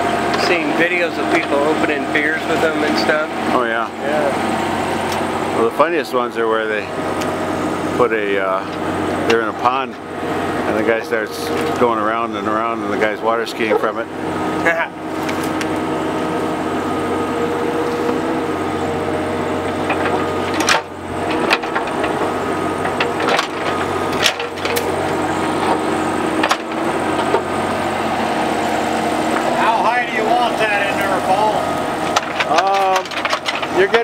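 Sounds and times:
diesel engine running under load: 0.0 - 34.0.

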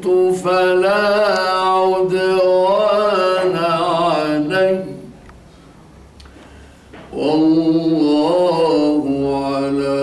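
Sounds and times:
man chanting recitation: 0.0 - 5.2, 7.1 - 10.0.

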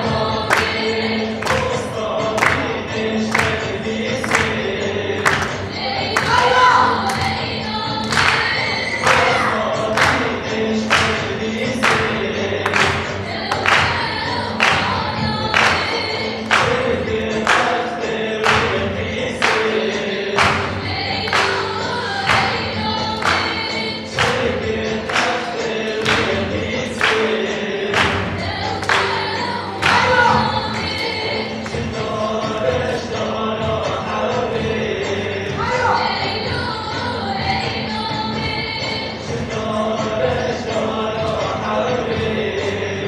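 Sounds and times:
voices singing folk song: 0.0 - 43.0.

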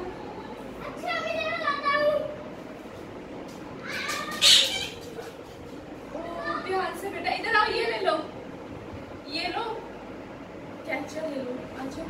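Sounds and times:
high-pitched cry: 3.9 - 5.1.

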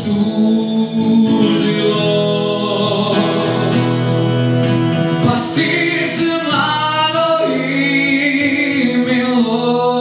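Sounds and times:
acoustic guitar chords: 0.0 - 10.0
man singing folk song: 0.0 - 10.0.

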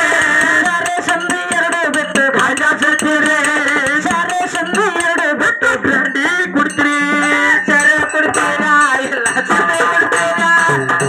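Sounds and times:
person singing through sound system: 0.0 - 11.0.

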